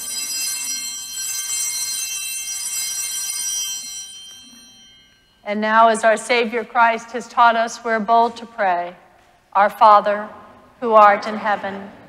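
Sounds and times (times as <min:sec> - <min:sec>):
small bells ringing: 0:00.0 - 0:06.2.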